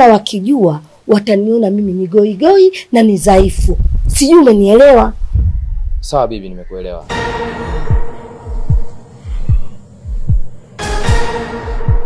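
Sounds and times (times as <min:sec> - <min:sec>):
heartbeat thumps: 0:03.3 - 0:06.2, 0:07.1 - 0:12.0
steady hum: 0:07.4 - 0:12.0.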